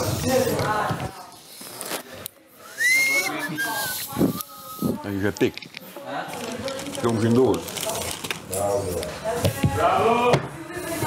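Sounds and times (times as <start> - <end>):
quiet talk: 0.0 - 11.0
person whistling: 2.7 - 4.9.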